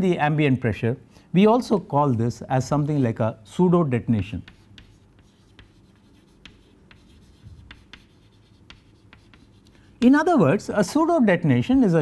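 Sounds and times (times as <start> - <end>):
chalk tapping and scratching: 4.2 - 10.3.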